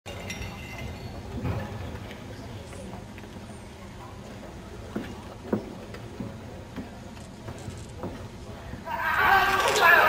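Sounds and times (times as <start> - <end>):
indoor sports hall background noise: 0.1 - 10.0.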